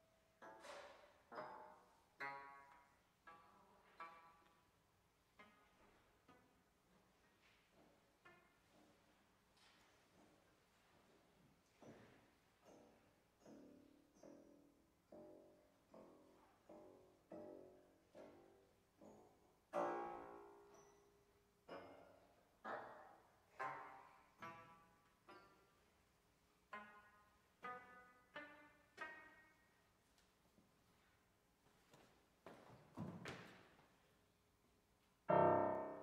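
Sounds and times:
soft piano notes: 0:00.0 - 0:30.0, 0:35.2 - 0:36.0.

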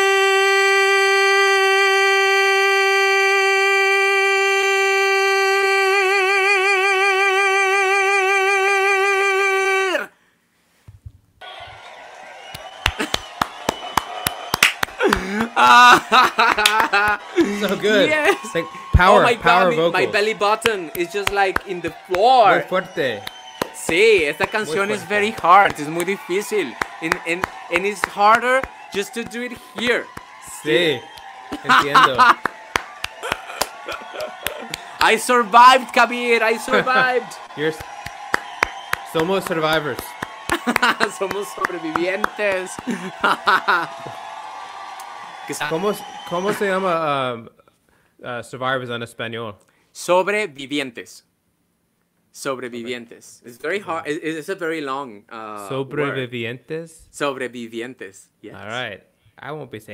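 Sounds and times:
man singing high note: 0:00.0 - 0:10.1
hand clapping: 0:12.4 - 0:18.1, 0:20.3 - 0:36.0, 0:36.6 - 0:46.6.

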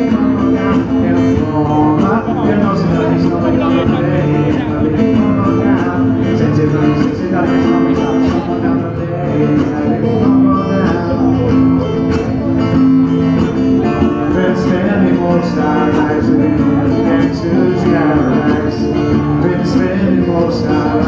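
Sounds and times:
acoustic guitar strummed: 0:00.0 - 0:21.0.

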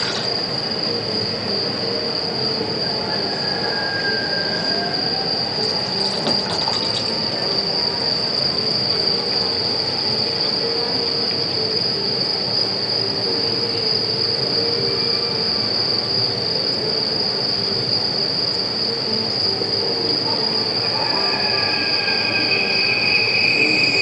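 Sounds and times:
high-pitched whine: 0:00.0 - 0:24.0
lower whistling tone: 0:00.0 - 0:24.0.

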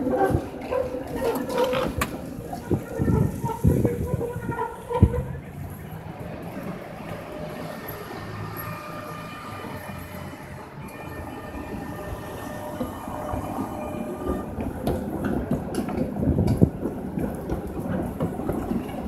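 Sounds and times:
tram wheels clattering over rails: 0:00.0 - 0:19.0.

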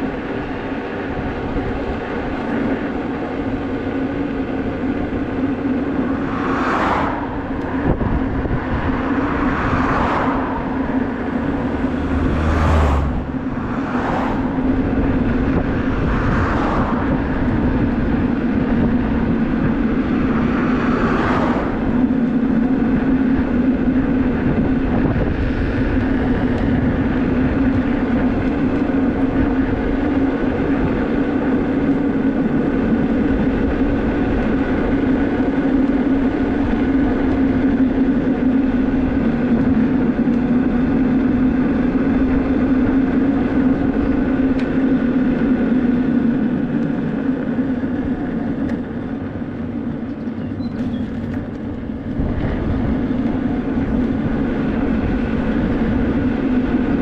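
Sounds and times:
tyre and motor hum: 0:00.0 - 0:57.0
wind buffeting microphone: 0:00.0 - 0:57.0.

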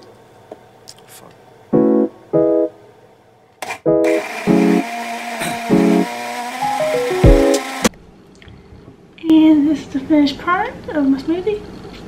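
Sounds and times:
instrumental background music: 0:01.8 - 0:02.8, 0:03.8 - 0:07.9
blender running: 0:03.6 - 0:07.9.

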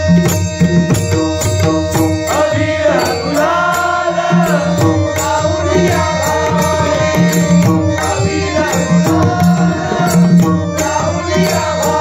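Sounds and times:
harmonium drone: 0:00.0 - 0:12.0
man singing: 0:02.1 - 0:12.0.

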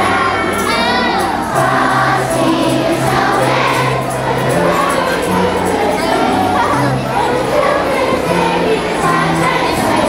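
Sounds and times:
group singing: 0:00.0 - 0:10.0.

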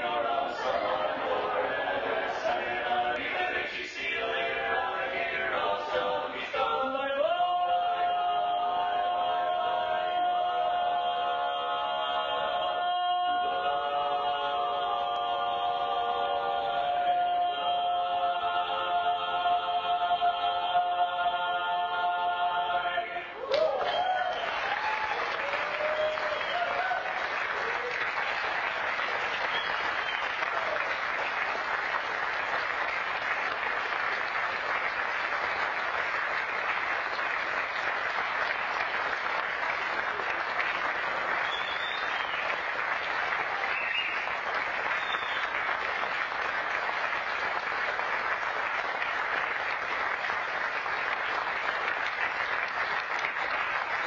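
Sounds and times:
audience applauding: 0:23.4 - 0:54.0.

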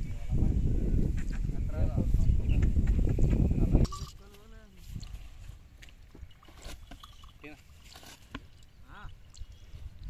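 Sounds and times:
wind rumble on microphone: 0:00.0 - 0:05.6, 0:08.9 - 0:10.0.

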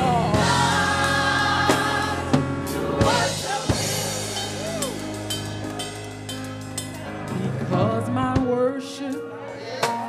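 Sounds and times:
gospel band music: 0:00.0 - 0:10.0.

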